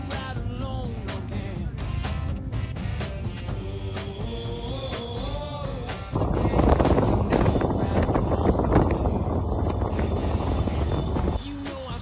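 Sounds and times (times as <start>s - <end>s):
motorcycle engine cruising: 6.0s - 11.4s
wind rushing past microphone: 6.0s - 11.4s.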